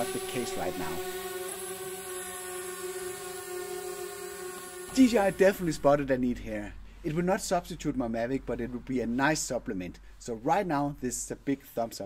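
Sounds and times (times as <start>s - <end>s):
drone propellers humming: 0.0s - 6.0s.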